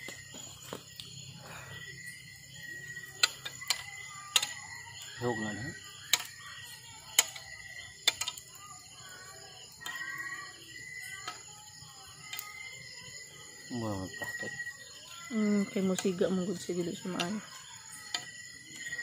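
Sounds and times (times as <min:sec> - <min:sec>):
campfire wood crackling: 0:00.0 - 0:19.0
high insect drone: 0:00.0 - 0:19.0.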